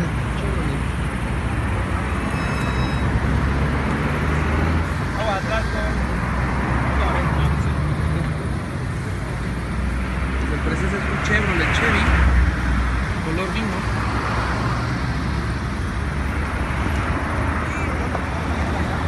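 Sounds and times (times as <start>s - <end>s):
highway traffic rumble: 0.0s - 19.0s.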